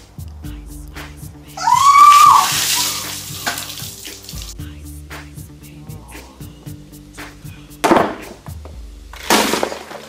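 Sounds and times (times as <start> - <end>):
background music: 0.0 - 10.0
high shriek: 1.6 - 3.2
water splashing onto paving: 1.9 - 4.6.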